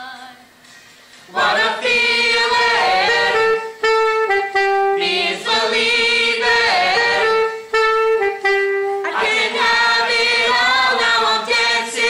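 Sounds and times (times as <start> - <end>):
young voices singing together: 0.0 - 0.6, 1.2 - 4.0, 4.8 - 7.8, 9.0 - 12.0.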